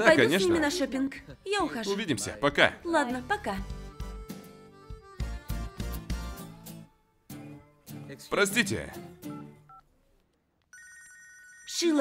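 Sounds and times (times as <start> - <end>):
phone ringtone: 10.7 - 12.0.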